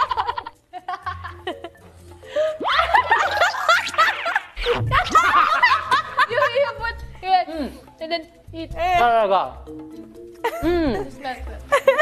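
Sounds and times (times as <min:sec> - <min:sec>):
people laughing and giggling: 0:00.0 - 0:07.1, 0:10.3 - 0:12.0.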